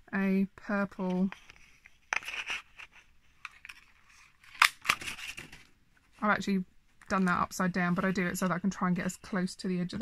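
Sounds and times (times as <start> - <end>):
card rustling: 1.0 - 6.1.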